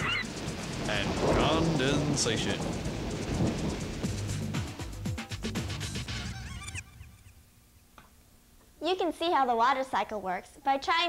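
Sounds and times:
percussive notes: 0:00.0 - 0:06.8
background music: 0:00.0 - 0:07.2.

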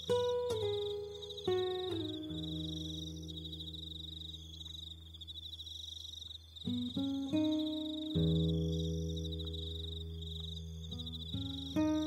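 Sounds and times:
acoustic guitar notes: 0:00.0 - 0:05.1, 0:06.6 - 0:12.0
crickets chirping: 0:00.0 - 0:12.0.

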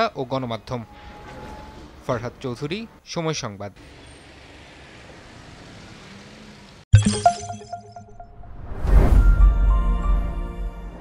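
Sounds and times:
street traffic noise: 0:00.0 - 0:06.9.

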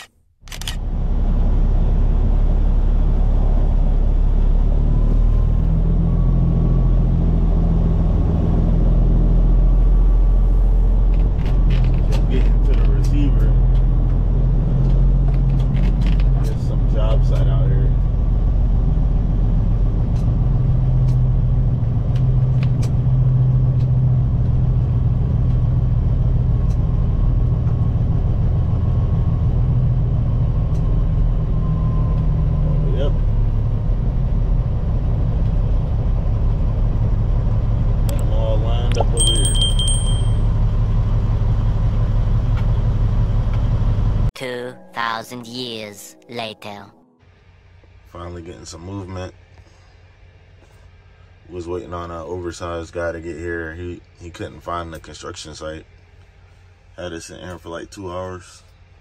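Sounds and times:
diesel truck engine drone: 0:00.5 - 0:59.0.

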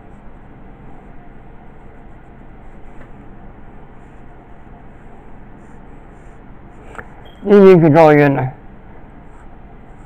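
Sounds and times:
pencil drawing on paper: 0:00.0 - 0:07.1, 0:09.0 - 0:10.0
steady background hum: 0:00.0 - 0:10.0.

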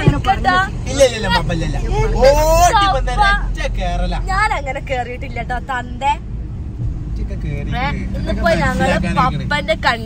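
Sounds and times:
moving vehicle rumble: 0:00.0 - 0:10.0.

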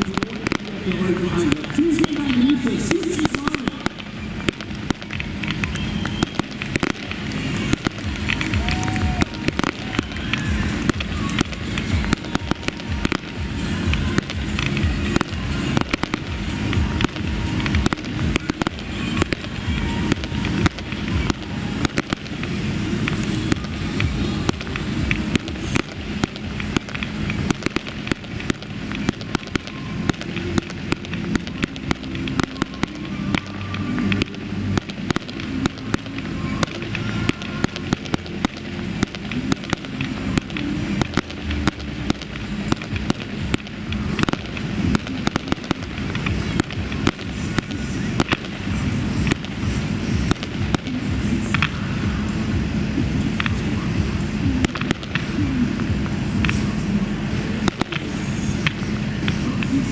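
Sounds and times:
fireworks crackles and bangs: 0:00.0 - 0:59.9.

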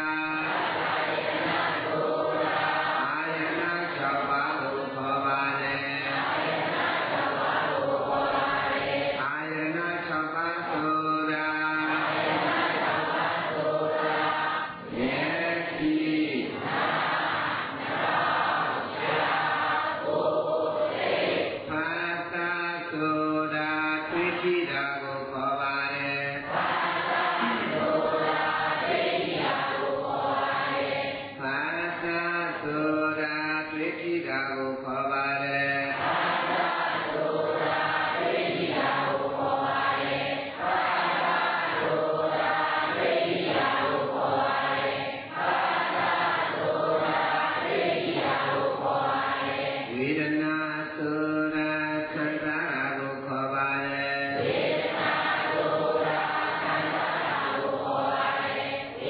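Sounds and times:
person chanting: 0:00.0 - 0:59.0.

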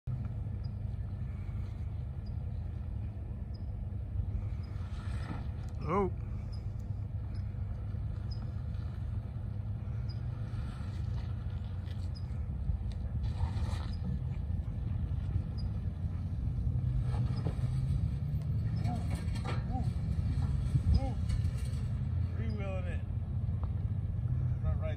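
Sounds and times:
suv engine running low: 0:00.0 - 0:24.9.

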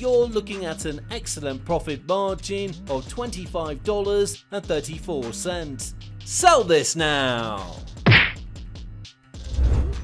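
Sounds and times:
low whoosh: 0:09.4 - 0:10.0.

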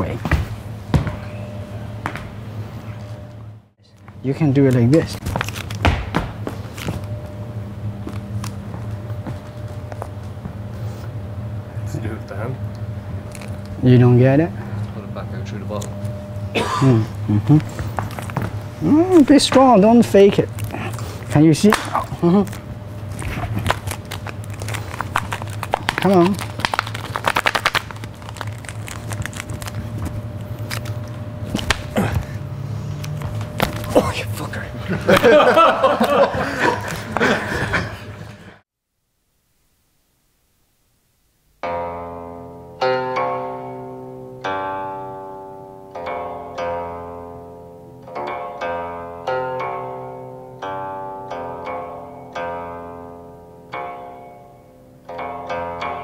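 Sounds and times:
steady low hum: 0:00.0 - 0:55.5
feet thumping on wooden floor: 0:00.2 - 0:01.2, 0:05.3 - 0:06.7.

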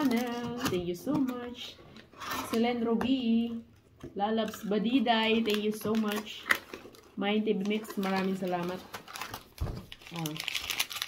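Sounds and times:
paper packing crinkling: 0:05.2 - 0:11.0.

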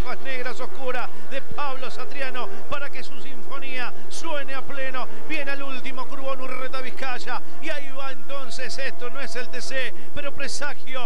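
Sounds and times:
man commentating: 0:00.0 - 0:11.0.

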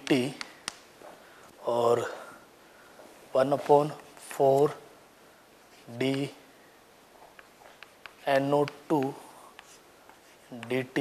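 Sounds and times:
man talking: 0:00.0 - 0:00.4, 0:01.6 - 0:02.4, 0:03.3 - 0:04.9, 0:05.9 - 0:06.4, 0:08.2 - 0:09.3, 0:10.5 - 0:11.0
chalk scratching on chalkboard: 0:07.4 - 0:11.0.

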